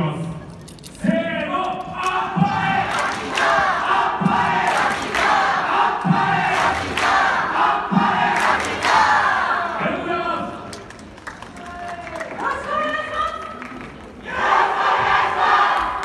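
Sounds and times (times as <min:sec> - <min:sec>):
group chanting and shouting: 0:01.0 - 0:10.7, 0:14.2 - 0:16.0.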